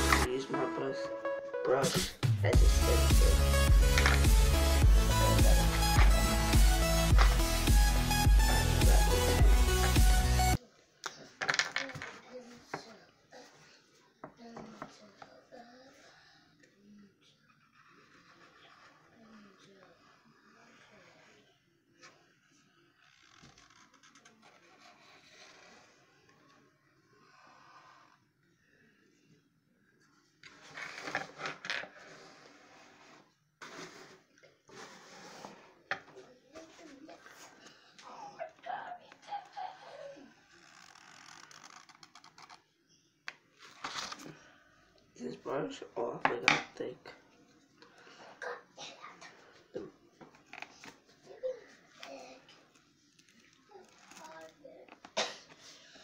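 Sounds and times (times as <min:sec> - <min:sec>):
person speaking: 0:00.0 - 0:10.5.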